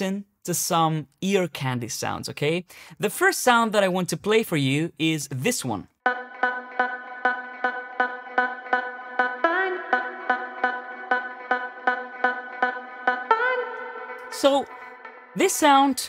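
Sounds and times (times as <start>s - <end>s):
filtered vocal sample pulsing tone: 6.1s - 16.0s.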